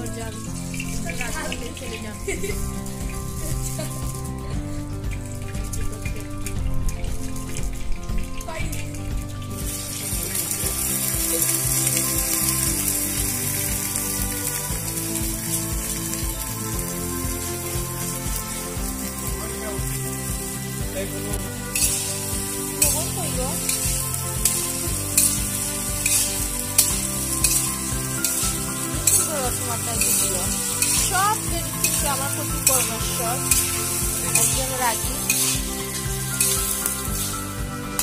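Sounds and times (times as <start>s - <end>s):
vegetables frying in hot oil: 0.0s - 38.0s
metal spatula scraping wok: 21.7s - 37.4s.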